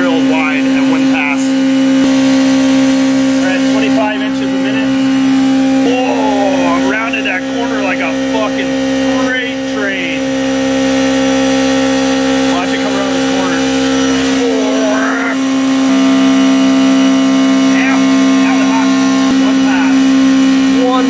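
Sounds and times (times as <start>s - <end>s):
milling machine drone: 0.0s - 21.0s.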